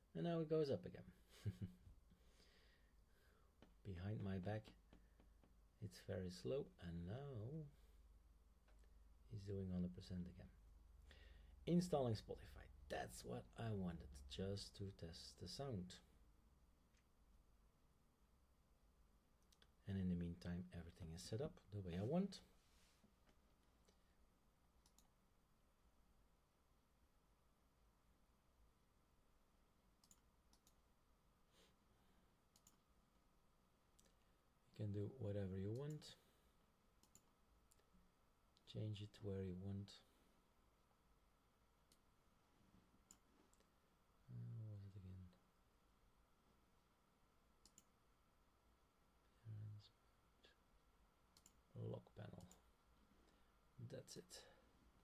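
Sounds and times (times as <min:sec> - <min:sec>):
computer mouse clicks: 0:24.8 - 0:25.2, 0:30.0 - 0:30.8, 0:32.5 - 0:32.8, 0:37.0 - 0:37.9, 0:43.0 - 0:43.7, 0:47.6 - 0:48.0, 0:51.3 - 0:51.6, 0:52.3 - 0:52.6
low voice hum: 0:44.2 - 0:45.4.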